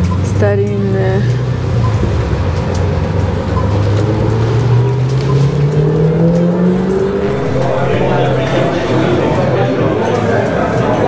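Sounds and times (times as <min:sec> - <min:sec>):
vehicle engine accelerating: 0:02.0 - 0:11.0.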